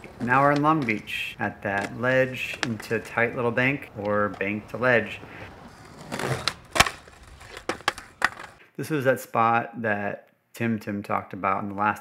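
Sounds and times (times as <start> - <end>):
skateboard wheels rumbling: 0.0 - 8.6
skateboard clacks: 6.1 - 8.6.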